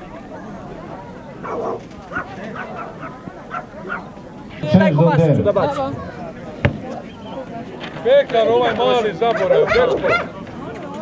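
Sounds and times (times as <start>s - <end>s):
crowd chatter: 0.0s - 11.0s
dog barking: 1.4s - 4.1s, 9.3s - 10.3s.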